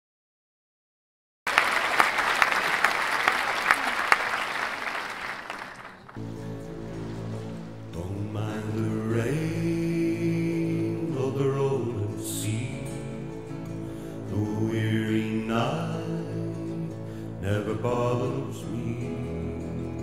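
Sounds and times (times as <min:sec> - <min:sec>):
applause: 0:01.5 - 0:06.2
sustained droning chords: 0:06.0 - 0:20.0.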